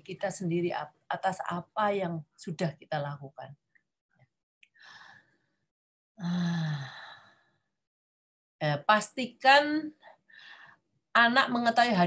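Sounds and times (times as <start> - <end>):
woman sighing: 6.2 - 7.2.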